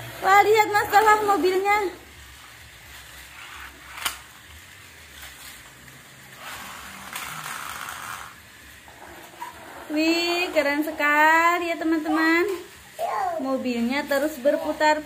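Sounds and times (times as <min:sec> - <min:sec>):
plastic toy cars clattering: 0:02.9 - 0:04.4, 0:05.1 - 0:10.6.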